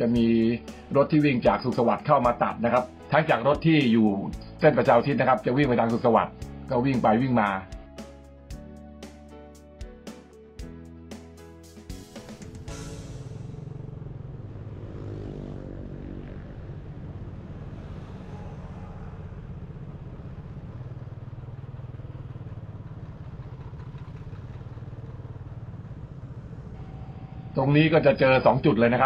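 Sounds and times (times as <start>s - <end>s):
motorcycle engine running: 12.0s - 29.0s
road and traffic noise: 12.7s - 29.0s.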